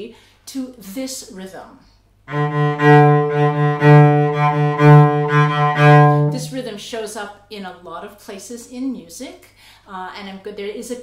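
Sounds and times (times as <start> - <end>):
cello bowing repeated note: 2.3 - 6.8.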